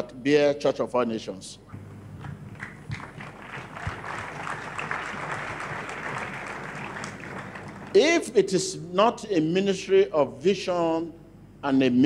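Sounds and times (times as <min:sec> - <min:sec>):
congregation applauding: 0:02.2 - 0:08.0.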